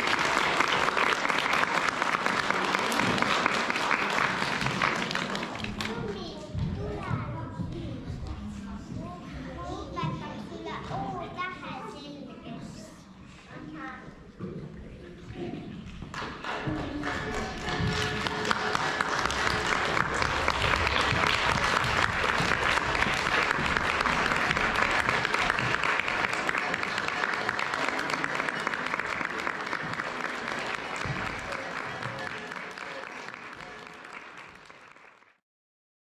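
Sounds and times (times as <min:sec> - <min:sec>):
audience clapping: 0:00.0 - 0:06.4, 0:15.9 - 0:35.4.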